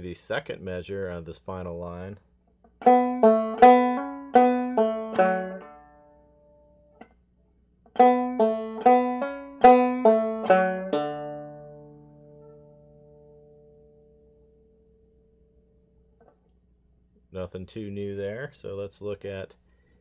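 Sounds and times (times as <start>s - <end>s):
banjo plucked and strummed: 2.6s - 7.2s, 7.8s - 16.4s.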